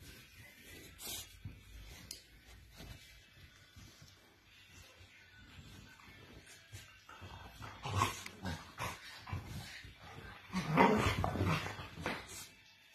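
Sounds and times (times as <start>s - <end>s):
dogs growling: 7.5s - 12.3s.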